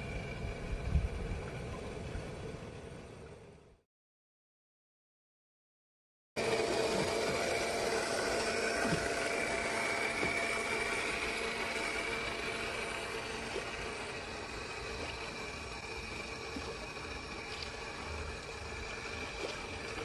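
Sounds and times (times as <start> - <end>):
model boat motor whine: 0.0 - 3.8, 6.4 - 20.0
churned water hiss: 6.5 - 20.0.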